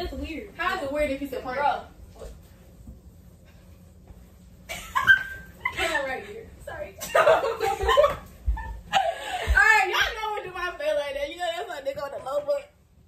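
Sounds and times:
women laughing: 4.7s - 6.4s, 7.0s - 9.6s.

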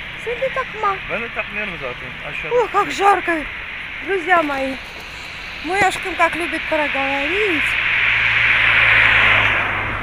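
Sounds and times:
steady low hum: 0.0s - 10.0s
vehicle passing: 0.0s - 10.0s.

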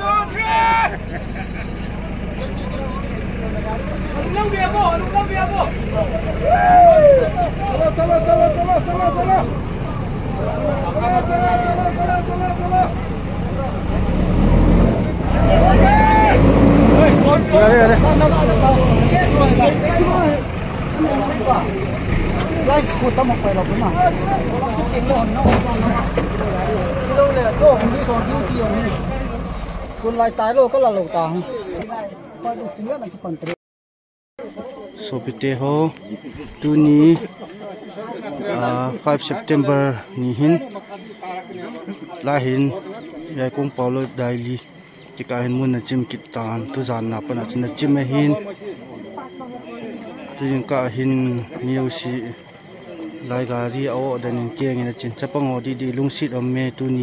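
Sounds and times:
crowd of men shouting: 0.0s - 1.2s, 4.2s - 25.4s
diesel truck engine rumbling: 0.0s - 31.8s.

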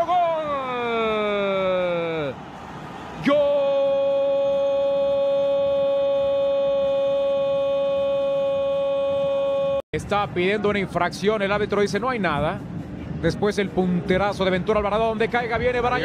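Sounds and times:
man shouting goal: 0.0s - 2.4s, 3.2s - 9.8s.

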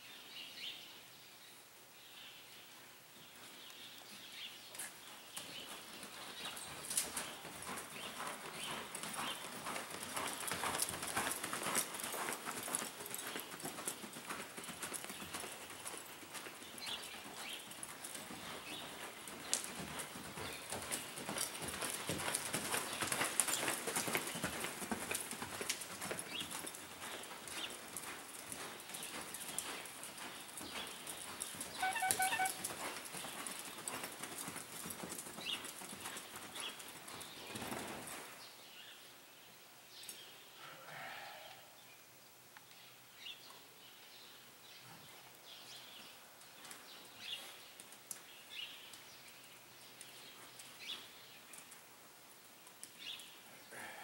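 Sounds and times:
hoofbeats on sand: 4.2s - 38.4s.

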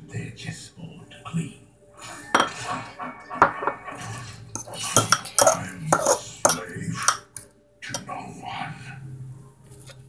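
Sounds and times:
hard objects clattering: 4.5s - 7.2s.

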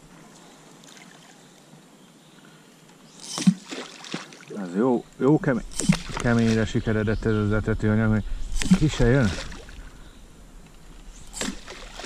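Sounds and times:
fishing feeder splashing on water: 3.2s - 4.5s, 5.7s - 6.6s, 8.6s - 9.8s, 11.3s - 12.0s.

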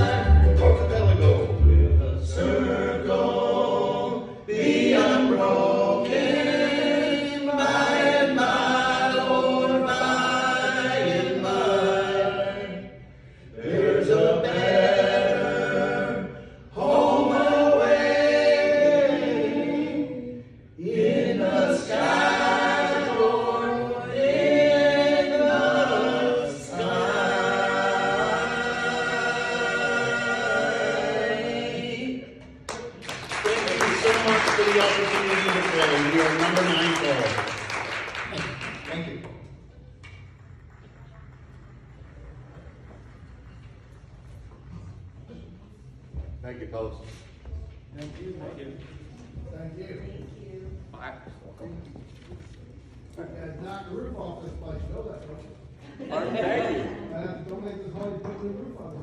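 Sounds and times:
men singing in harmony: 0.0s - 12.8s.

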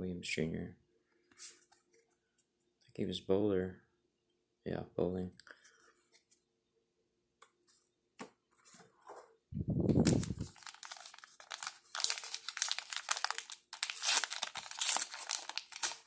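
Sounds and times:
foil wrapper tearing and crinkling: 10.0s - 16.0s.

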